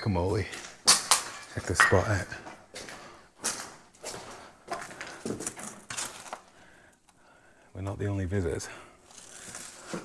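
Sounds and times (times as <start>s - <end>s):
footsteps crunching on debris: 0.1s - 6.6s.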